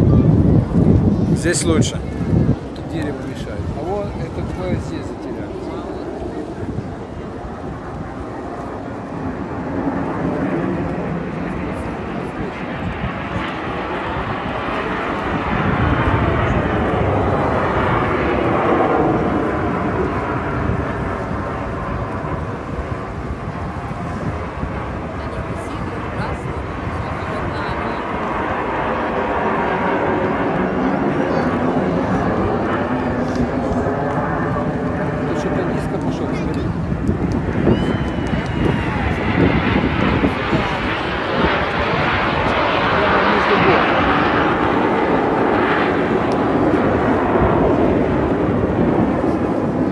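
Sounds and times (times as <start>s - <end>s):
jets flying past: 0.0s - 49.9s.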